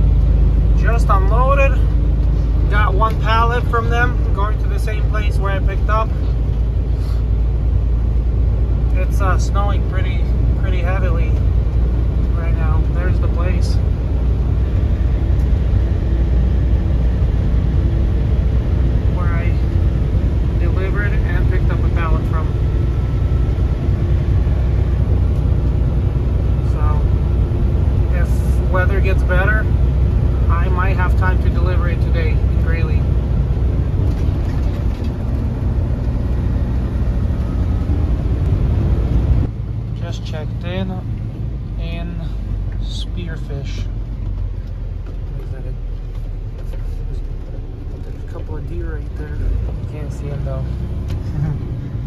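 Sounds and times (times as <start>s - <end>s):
road noise: 0.0s - 52.0s
truck engine drone: 0.0s - 52.0s.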